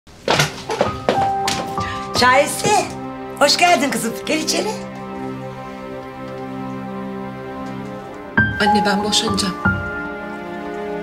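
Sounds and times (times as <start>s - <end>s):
background music: 0.1s - 11.0s.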